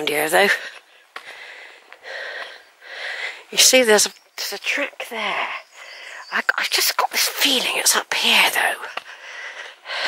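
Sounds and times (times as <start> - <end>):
person breathing: 0.6 - 3.5, 9.0 - 10.0.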